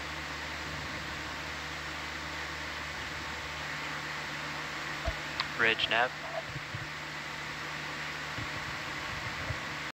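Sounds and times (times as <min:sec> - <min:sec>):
audio feed hiss and hum: 0:00.0 - 0:09.9.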